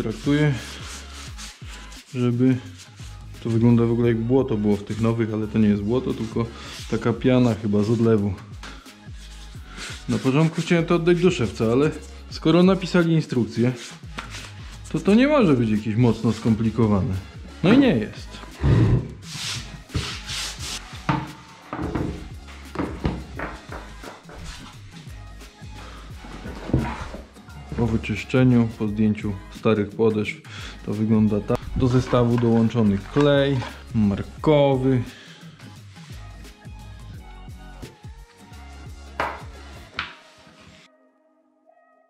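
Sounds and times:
hands rubbing wooden board: 0:00.0 - 0:03.8, 0:08.7 - 0:12.1, 0:13.7 - 0:14.8, 0:18.5 - 0:28.0
music with bass and beat: 0:00.0 - 0:29.6, 0:30.6 - 0:40.0
boots knocking on wood: 0:21.1 - 0:24.6, 0:39.2 - 0:39.5.

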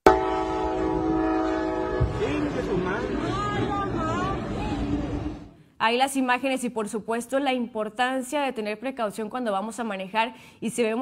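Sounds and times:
train horn chord: 0:00.0 - 0:05.5
passing train rumble: 0:00.1 - 0:05.6.

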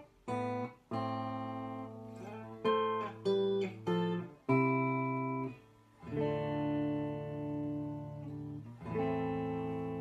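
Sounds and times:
clean electric guitar chords: 0:00.0 - 0:10.0.

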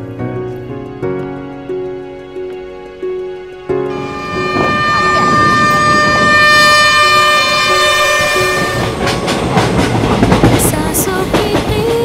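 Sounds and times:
train rumbling past: 0:03.8 - 0:12.0
locomotive horn: 0:03.9 - 0:09.3
wheels clattering on rails: 0:03.9 - 0:12.0.

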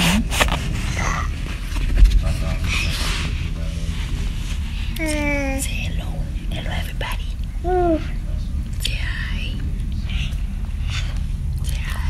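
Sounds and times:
steady low hum: 0:00.0 - 0:12.0
person whispering: 0:05.0 - 0:05.9
person's held vocal sound: 0:07.6 - 0:08.1.

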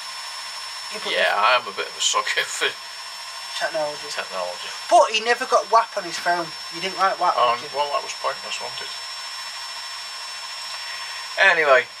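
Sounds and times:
high-pitched whine: 0:00.0 - 0:12.0
steady whirring noise: 0:00.0 - 0:12.0.

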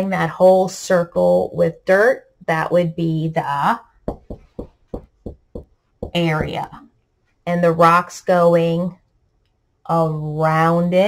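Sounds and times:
marker writing on a whiteboard: 0:04.1 - 0:06.8.

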